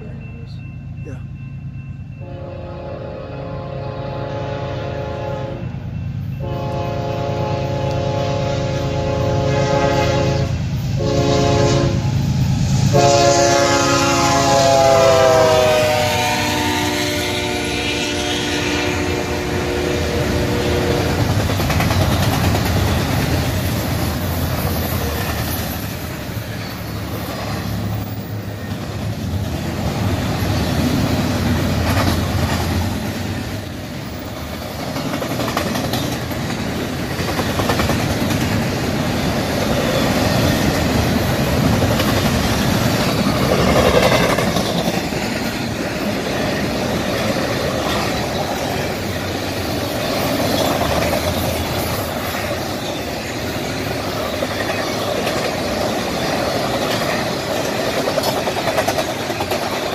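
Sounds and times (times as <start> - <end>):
locomotive air horn blasts: 2.2 - 5.8, 6.4 - 12.2, 12.9 - 21.3
freight cars rumbling and clattering: 20.2 - 59.9.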